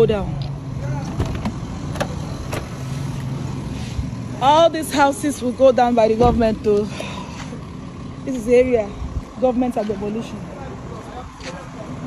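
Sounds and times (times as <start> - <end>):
car engine humming: 0.0 - 12.0.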